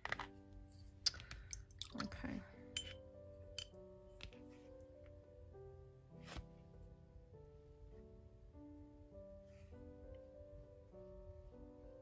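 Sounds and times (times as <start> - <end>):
soft background music: 0.0 - 12.0
pipette and brush clinking jars: 1.1 - 3.8.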